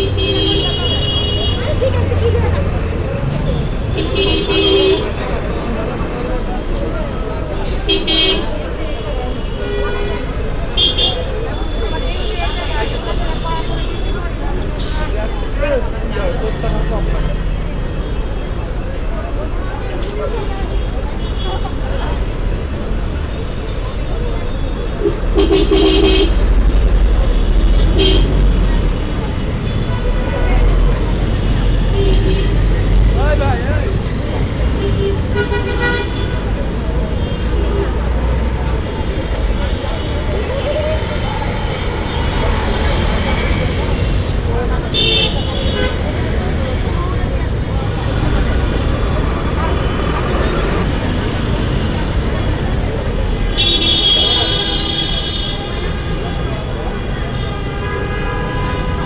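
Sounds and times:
vehicle horns honking: 0.0s - 2.0s, 3.5s - 5.2s, 7.8s - 13.0s, 25.0s - 26.4s, 27.8s - 28.5s, 34.7s - 36.5s, 44.9s - 46.0s, 53.4s - 56.3s, 56.9s - 59.0s
traffic engine rumble: 0.0s - 59.0s.

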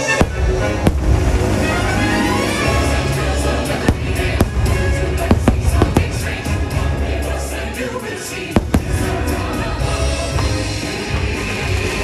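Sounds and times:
fireworks bangs: 0.0s - 2.9s, 3.5s - 7.0s, 8.5s - 10.7s
rumble of fireworks bursts: 0.0s - 12.0s
show music: 0.0s - 12.0s.

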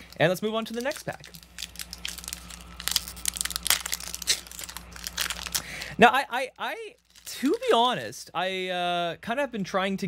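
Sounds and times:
foil wrapper crinkling: 0.0s - 8.2s.

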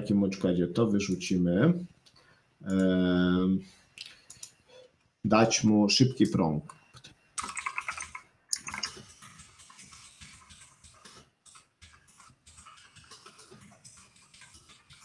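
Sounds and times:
rapid typing on keyboard: 7.4s - 15.0s.

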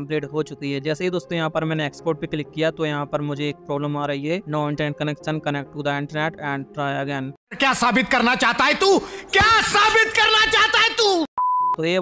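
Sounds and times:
man talking: 0.0s - 12.0s
man speaking sharply: 6.8s - 12.0s.

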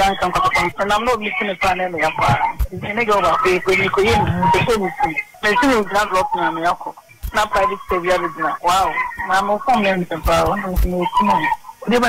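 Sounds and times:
person talking: 0.0s - 12.0s.

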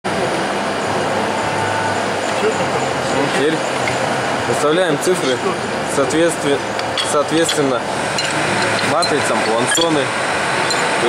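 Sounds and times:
workshop machinery whirring: 0.1s - 11.0s
stamping press running: 6.8s - 11.0s.

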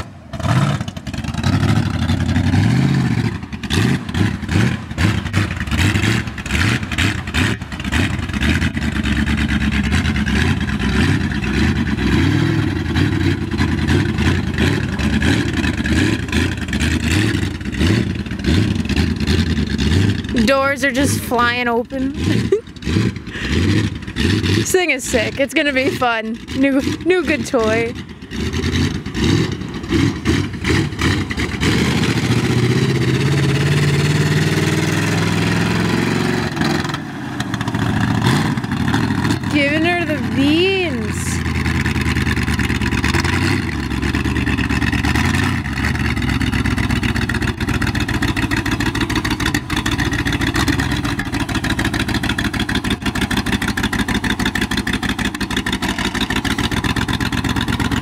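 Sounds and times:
truck engine revving: 0.0s - 58.0s.

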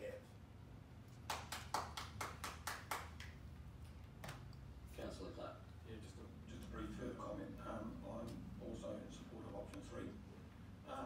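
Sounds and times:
faint low room hum: 0.0s - 11.0s
hand claps: 1.1s - 3.4s, 4.2s - 4.5s.

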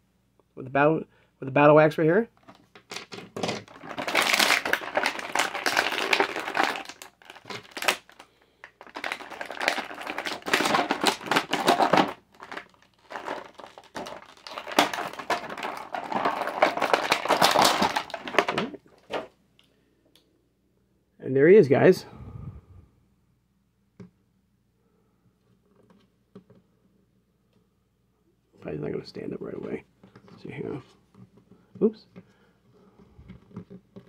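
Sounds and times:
plastic packaging crinkling: 2.4s - 19.3s.

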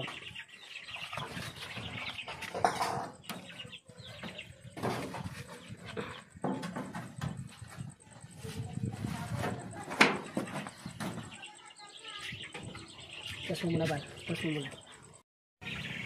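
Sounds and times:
chickens clucking: 0.0s - 16.0s.

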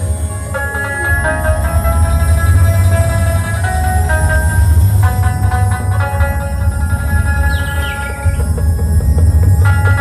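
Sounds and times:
heavy bass: 0.0s - 10.0s
sustained keyboard notes: 0.0s - 10.0s
sparse drumming: 0.6s - 10.0s.

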